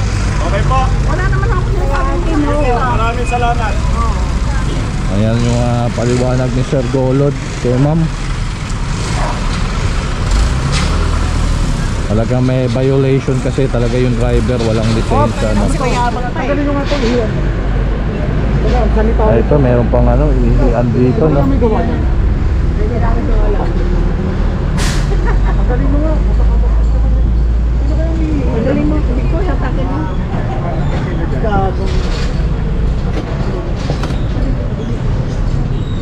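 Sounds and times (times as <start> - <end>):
street traffic: 0.0 - 36.0
truck engine rumbling: 0.0 - 36.0
voices talking: 0.3 - 8.2, 11.0 - 36.0.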